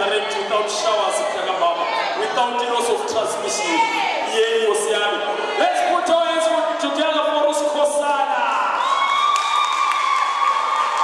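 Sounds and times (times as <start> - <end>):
crowd cheering and clapping: 8.4 - 11.0.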